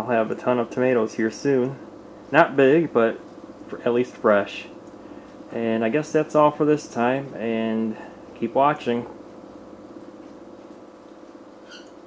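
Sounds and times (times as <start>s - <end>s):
low machine hum: 0.0s - 12.0s
brief high squeak: 11.6s - 12.0s.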